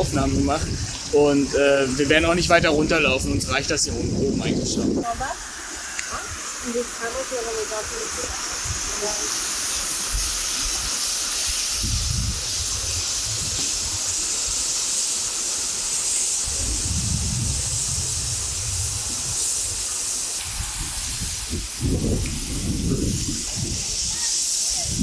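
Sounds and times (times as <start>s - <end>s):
wind buffeting microphone: 0.0s - 14.7s, 16.4s - 25.0s
waterfall rushing: 0.0s - 25.0s.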